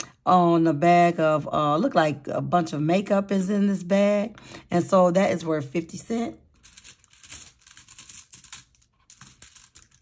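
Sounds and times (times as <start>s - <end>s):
coins clicking and rustling: 6.6s - 10.0s.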